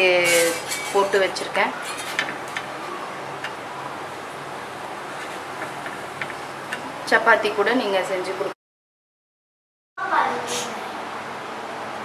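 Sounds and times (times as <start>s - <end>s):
fingers tapping on iron griddle: 5.6s - 6.9s.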